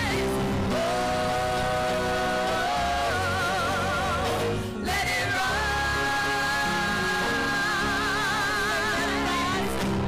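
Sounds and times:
women singing gospel song: 0.0s - 10.0s.

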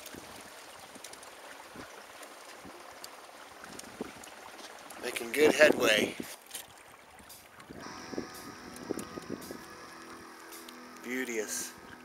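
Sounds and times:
water lapping against hull: 0.0s - 10.9s
steady high tones: 7.3s - 12.0s.

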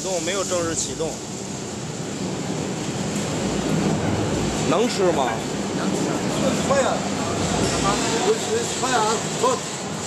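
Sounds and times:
conveyor dryer mechanical drone: 0.0s - 10.0s.

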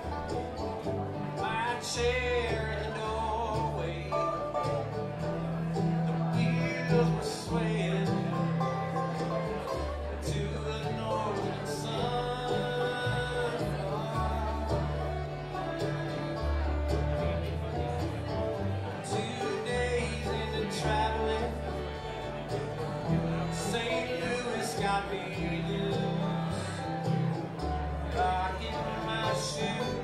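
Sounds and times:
acoustic guitar: 0.0s - 30.0s
banjo: 0.0s - 30.0s
fiddle: 0.0s - 30.0s
mandolin: 0.0s - 30.0s
upright bass: 0.0s - 30.0s.

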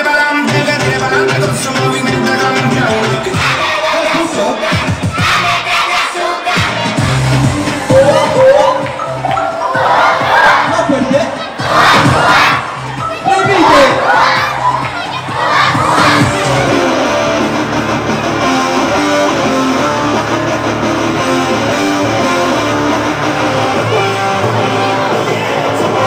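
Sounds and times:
loud music: 0.0s - 26.0s
children shouting and cheering: 3.3s - 26.0s
electric guitar rock lead: 15.9s - 26.0s.

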